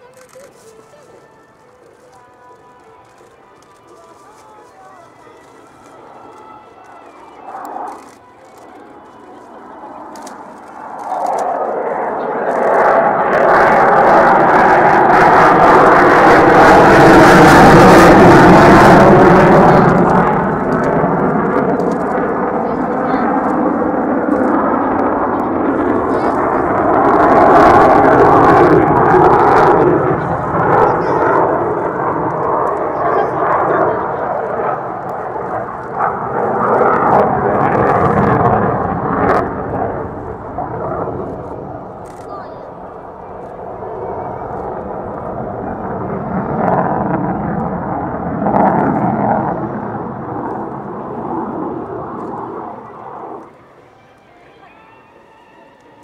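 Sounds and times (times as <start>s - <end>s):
fighter jet passing overhead: 0.0s - 56.0s.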